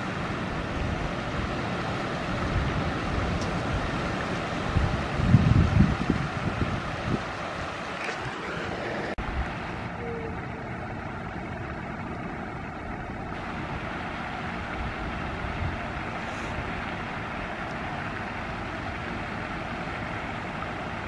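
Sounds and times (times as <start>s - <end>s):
distant traffic rumble: 0.0s - 21.0s
wind on microphone: 0.0s - 21.0s.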